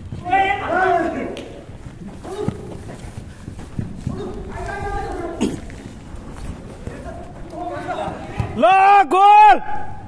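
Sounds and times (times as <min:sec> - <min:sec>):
running footsteps on turf: 0:00.0 - 0:08.9.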